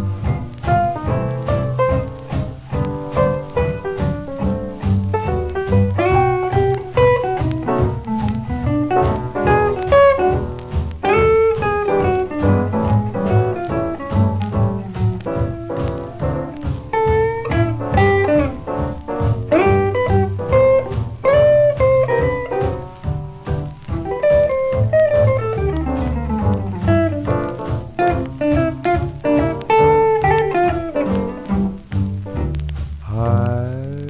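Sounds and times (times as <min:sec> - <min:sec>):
jazz guitar solo: 0:00.0 - 0:34.0
plucked double bass: 0:00.0 - 0:34.0.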